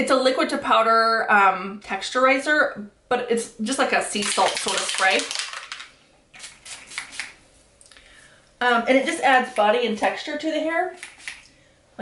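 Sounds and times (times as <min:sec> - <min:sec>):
spray bottle spritzing: 0:04.2 - 0:07.4, 0:11.0 - 0:11.5.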